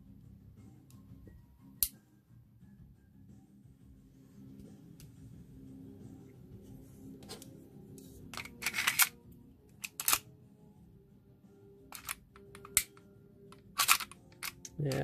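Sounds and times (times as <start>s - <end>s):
pistol slide clicking and rattling: 8.4s - 9.2s, 9.8s - 10.2s, 11.9s - 13.0s, 13.6s - 14.8s.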